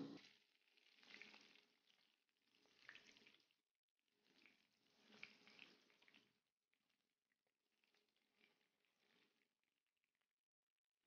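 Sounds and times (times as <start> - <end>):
battered leaves frying in oil: 0.2 - 6.4.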